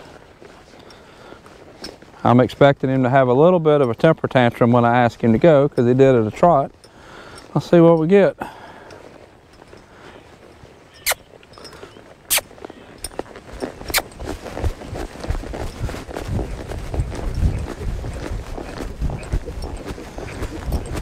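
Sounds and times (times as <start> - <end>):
horse hooves on dirt: 0.0 - 21.0.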